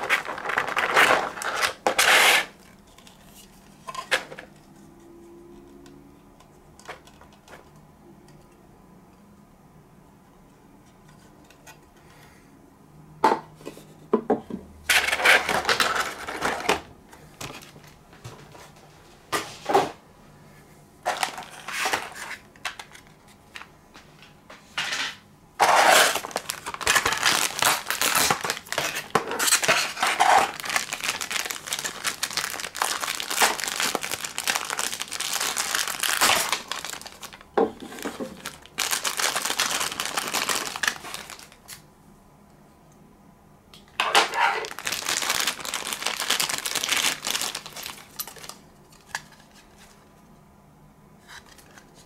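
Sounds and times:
plastic packaging crinkling: 0.0 - 3.5, 15.0 - 16.9, 21.1 - 23.6, 25.6 - 41.7, 43.9 - 50.0.

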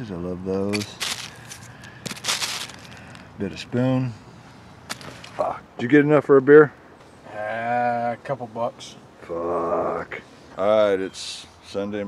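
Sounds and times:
coins being sorted by hand: 0.7 - 3.0
plastic sheet rustling: 0.7 - 3.2.

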